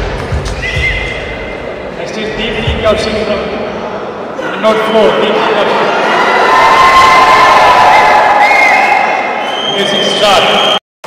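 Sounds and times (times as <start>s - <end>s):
steady background noise: 0.0s - 10.8s.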